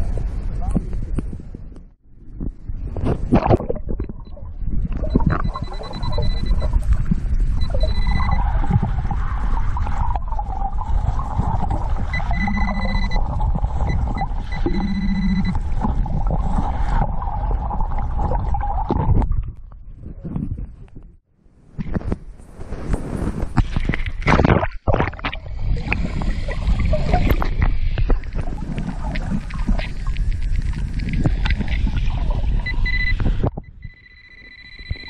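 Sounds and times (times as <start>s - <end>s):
underwater seawater sloshing: 2.8s - 20.2s, 22.4s - 33.4s
high steady beeps: 5.0s - 6.8s, 7.6s - 8.7s, 12.1s - 15.7s, 32.6s - 35.0s
wavering electronic tone: 5.0s - 6.8s, 7.6s - 8.8s, 11.9s - 15.8s, 32.6s - 35.0s.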